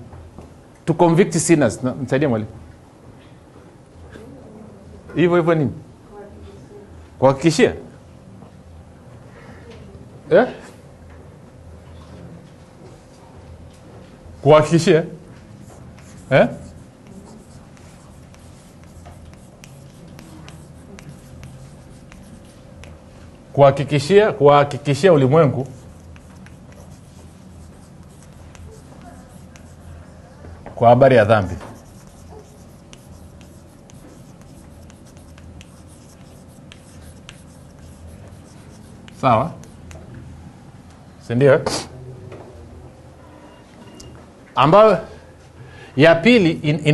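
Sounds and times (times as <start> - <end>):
chalk tapping and scraping: 15.4 - 23.4, 24.7 - 30.8, 31.4 - 40.1.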